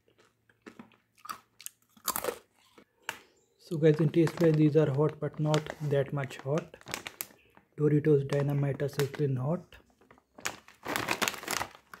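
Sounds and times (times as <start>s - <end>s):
plastic chip bag crinkling: 0.2s - 12.0s.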